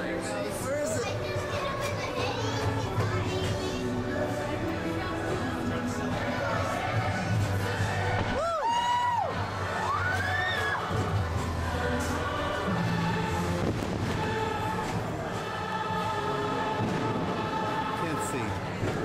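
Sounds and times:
music over outdoor loudspeakers: 0.0 - 19.0
spectators whooping and cheering: 8.3 - 11.1.

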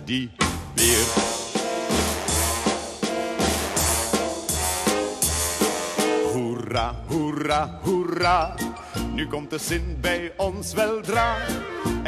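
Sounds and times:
band playing march-style pop: 0.1 - 8.4
drum kit steady beat: 0.4 - 6.5.

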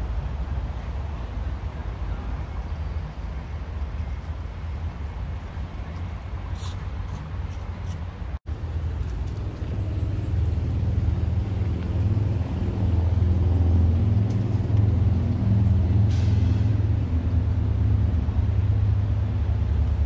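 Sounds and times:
heavy vehicles engine rumble: 0.0 - 20.0.

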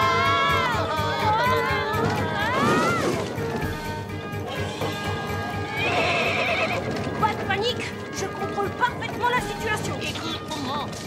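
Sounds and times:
background music: 0.0 - 11.0
hoofbeats: 0.1 - 11.0
cartoon horse whinnying: 4.5 - 7.0.

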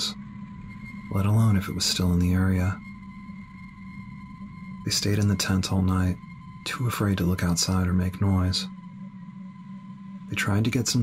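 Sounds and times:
low ambient drone: 0.0 - 11.0
narrator speaking: 1.1 - 2.8, 4.9 - 8.7, 10.3 - 11.0.

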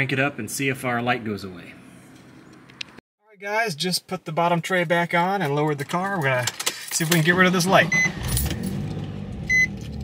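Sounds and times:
car starter cranking: 6.0 - 10.0
high dashboard chime beeps: 9.5 - 9.7.

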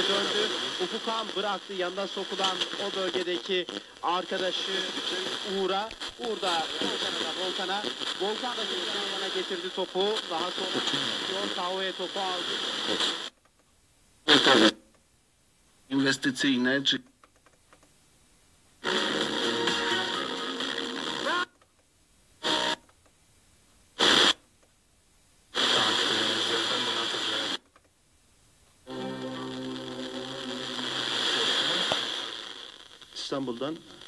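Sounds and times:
snatches of radio broadcast audio: 0.0 - 13.6, 14.3 - 15.0, 18.8 - 21.7, 22.4 - 23.0, 24.0 - 24.4, 25.5 - 27.9, 28.9 - 34.0.

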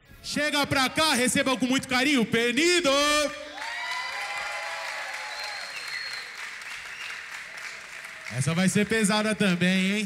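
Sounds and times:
audience applauding: 3.5 - 10.0.

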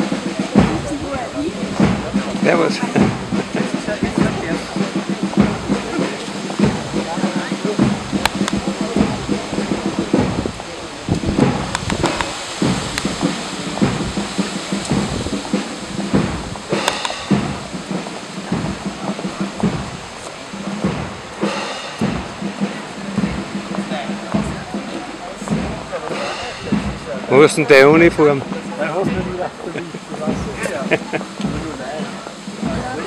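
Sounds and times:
people chattering: 0.0 - 33.0
wind band playing march music: 0.0 - 33.0.

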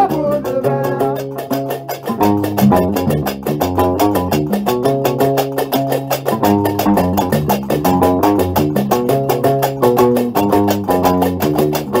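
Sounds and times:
bass lute plucking a riff: 0.0 - 12.0
fast clacking beat: 0.0 - 12.0.

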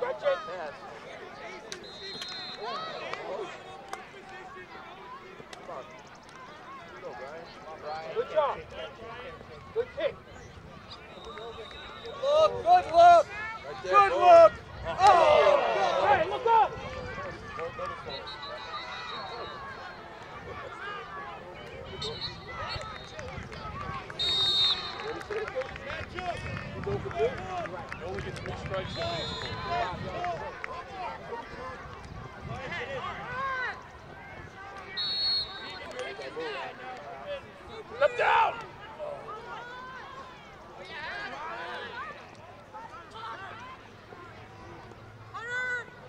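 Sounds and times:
faint chatter: 0.0 - 46.0
voices calling out: 0.0 - 46.0
high whistle tones: 1.8 - 2.8, 18.1 - 20.0, 24.2 - 25.2, 34.9 - 35.9.

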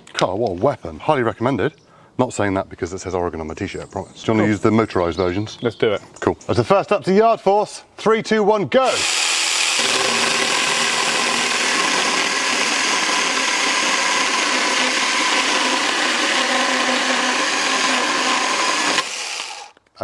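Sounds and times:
chainsaw cutting through wood: 8.8 - 19.8.

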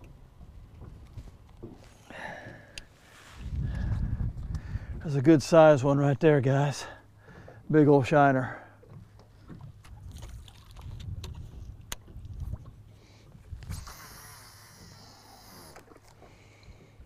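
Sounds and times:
low wind rumble: 0.0 - 8.1, 9.3 - 15.4
fishing reel spool whirring: 13.2 - 16.2.

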